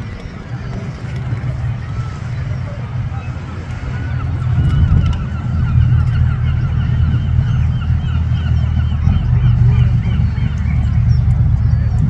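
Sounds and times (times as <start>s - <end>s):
birds honking: 0.0s - 12.0s
loud steady low rumble: 0.0s - 12.0s.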